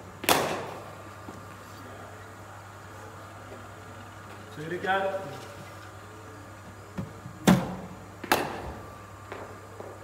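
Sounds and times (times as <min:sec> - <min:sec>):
bat striking cricket ball: 0:00.2 - 0:00.8, 0:08.2 - 0:09.4.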